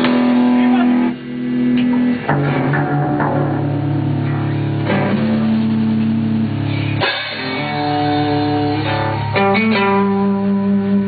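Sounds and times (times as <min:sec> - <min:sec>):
bass guitar sustained notes: 0:00.0 - 0:11.0
distorted electric guitar: 0:00.0 - 0:11.0
drum kit hit: 0:01.8 - 0:10.1.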